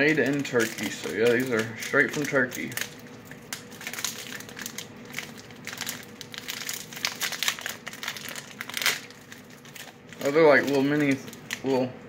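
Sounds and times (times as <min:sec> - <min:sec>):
plastic wrapper crackling: 0:00.0 - 0:11.9.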